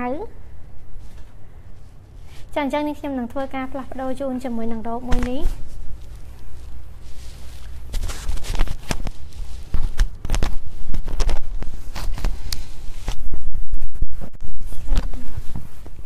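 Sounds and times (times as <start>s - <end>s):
rubbing and scraping: 5.5s - 16.0s.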